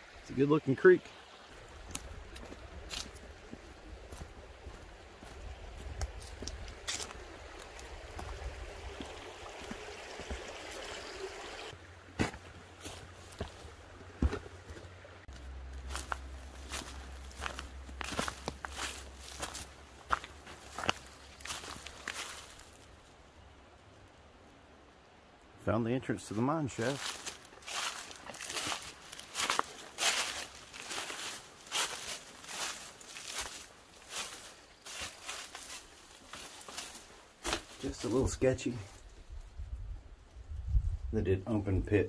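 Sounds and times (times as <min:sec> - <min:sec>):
creek running: 0:00.0 - 0:39.1
footsteps in dry leaves: 0:01.2 - 0:10.9, 0:12.1 - 0:23.0, 0:26.7 - 0:39.1.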